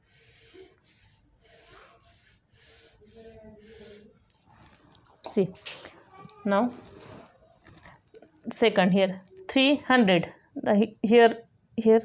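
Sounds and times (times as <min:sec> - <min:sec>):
pen scratching on paper: 0:00.0 - 0:04.2.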